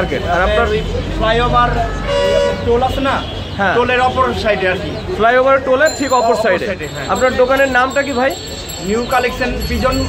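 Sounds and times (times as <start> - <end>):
street traffic rumble: 0.0 - 10.0
vehicle horn: 1.8 - 3.6.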